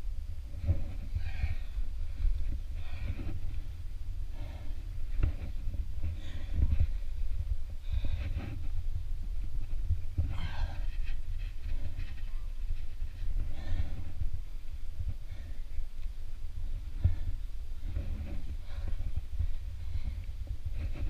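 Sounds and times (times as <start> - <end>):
steady low rumble: 0.0 - 21.0
person breathing hard: 0.5 - 9.0, 10.1 - 21.0.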